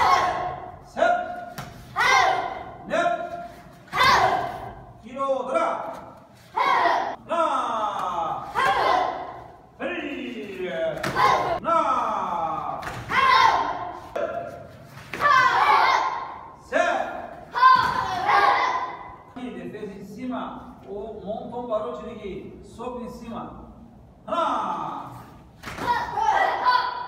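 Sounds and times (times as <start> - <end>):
people calling out: 0.0 - 4.9, 5.5 - 9.5, 11.0 - 14.6, 15.2 - 19.1, 25.7 - 27.0.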